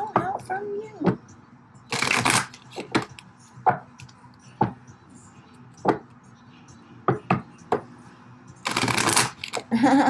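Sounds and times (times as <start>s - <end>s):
cards shuffling: 8.7s - 9.7s.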